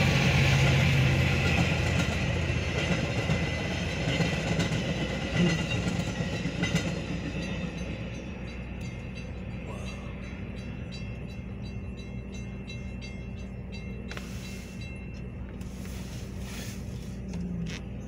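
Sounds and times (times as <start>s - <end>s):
crossing bell dinging: 0.0s - 16.5s
train clattering past: 0.0s - 17.6s
steady low hum: 8.1s - 18.0s.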